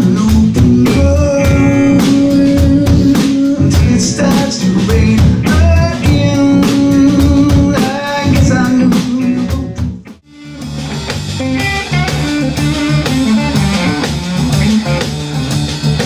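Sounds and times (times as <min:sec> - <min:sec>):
person singing: 0:00.0 - 0:09.9
electric guitar: 0:00.0 - 0:16.0
live blues rock band: 0:00.0 - 0:16.0.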